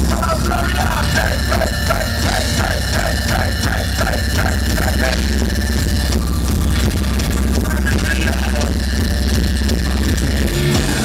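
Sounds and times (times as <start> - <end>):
live rock band playing: 0.0 - 11.0
steady low rumble: 0.0 - 11.0.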